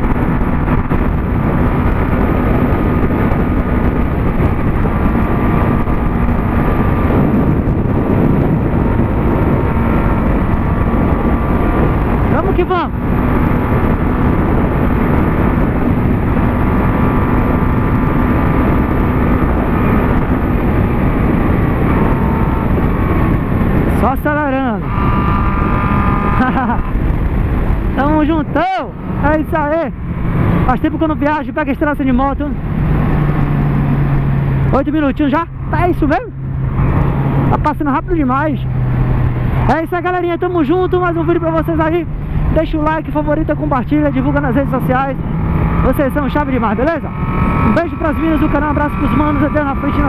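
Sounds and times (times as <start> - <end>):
heavy wind noise: 0.0 - 50.0
motorcycle engine at speed: 0.0 - 50.0.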